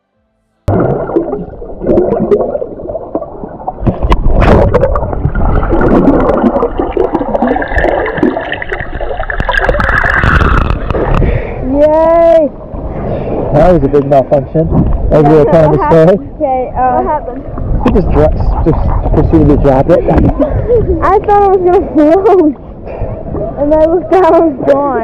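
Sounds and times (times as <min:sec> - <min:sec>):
seawater sloshing and gurgling: 0:00.7 - 0:16.2, 0:16.9 - 0:25.0
muffled underwater rushing: 0:00.7 - 0:25.0.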